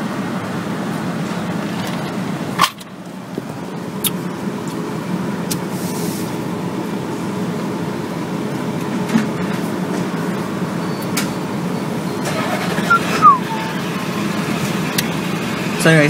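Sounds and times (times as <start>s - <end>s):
car idling rumble: 0.0s - 16.0s.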